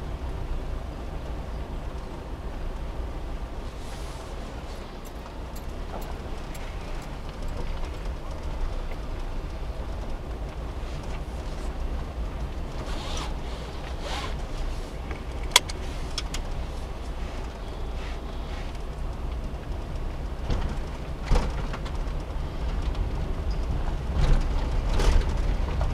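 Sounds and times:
van engine and road rumble: 0.0 - 25.9
rustling: 3.5 - 19.8.

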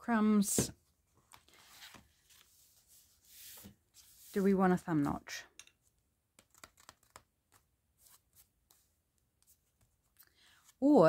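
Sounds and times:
paper pages rustling: 1.1 - 5.1, 6.4 - 10.2
soft paper swish: 1.6 - 4.6.

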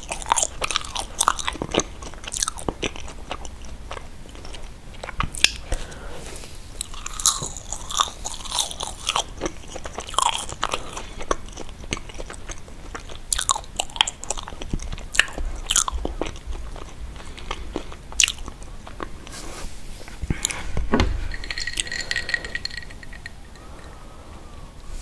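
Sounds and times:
mouth chewing marshmallow: 0.0 - 19.7.

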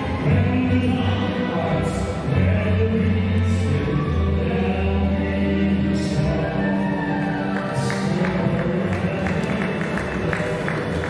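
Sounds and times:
waltz music: 0.0 - 11.0.

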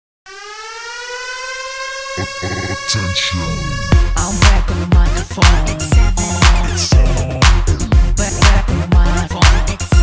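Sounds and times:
siren-like synth tone: 0.3 - 4.0.

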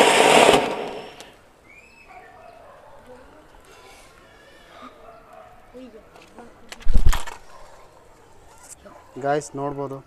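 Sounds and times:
firework rushing hiss of sparks: 0.0 - 1.4.

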